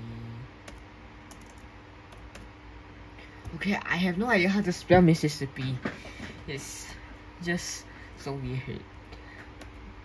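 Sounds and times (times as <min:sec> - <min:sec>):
laptop key presses: 0:00.7 - 0:02.5.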